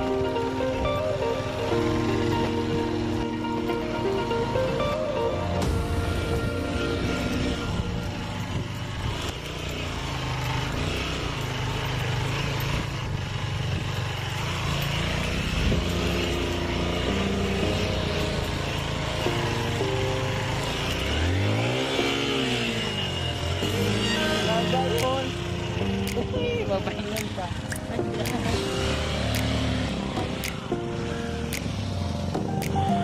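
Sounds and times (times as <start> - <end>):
background music: 0.0 - 12.0, 14.4 - 33.0
dirt bike engine revving: 0.0 - 33.0.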